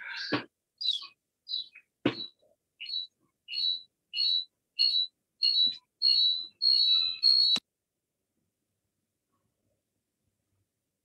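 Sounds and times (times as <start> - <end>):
high-pitched chirps: 0.1 - 7.6.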